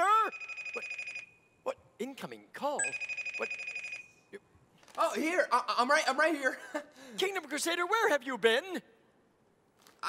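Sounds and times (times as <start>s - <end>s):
telephone ringing: 0.3s - 1.3s, 2.8s - 4.2s.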